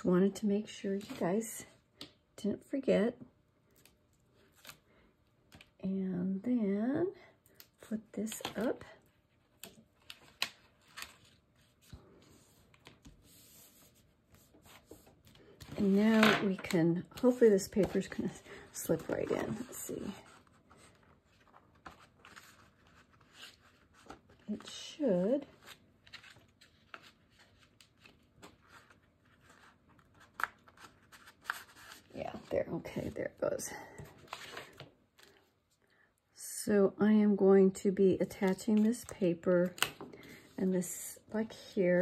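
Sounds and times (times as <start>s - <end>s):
soft paper rustle: 7.6s - 35.5s.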